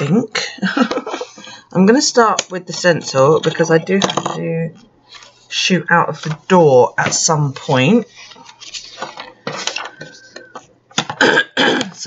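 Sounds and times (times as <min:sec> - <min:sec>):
paper pages rustling: 0:05.0 - 0:05.5, 0:06.1 - 0:11.1.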